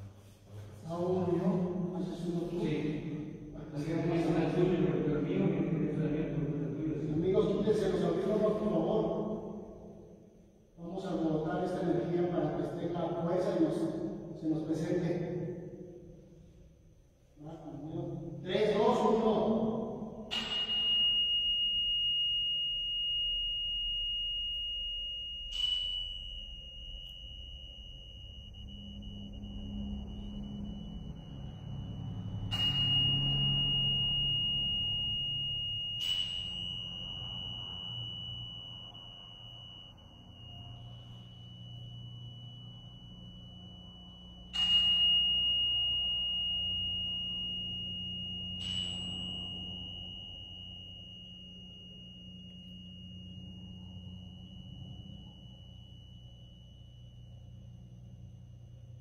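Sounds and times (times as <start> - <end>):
tuning fork ringing: 0.0 - 59.0.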